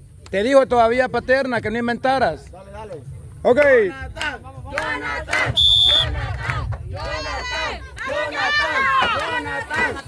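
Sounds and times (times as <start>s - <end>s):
people shouting and cheering: 3.6s - 10.0s.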